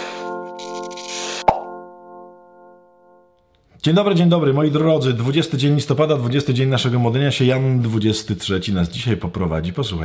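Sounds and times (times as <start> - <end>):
sharp pop: 1.4 - 1.8.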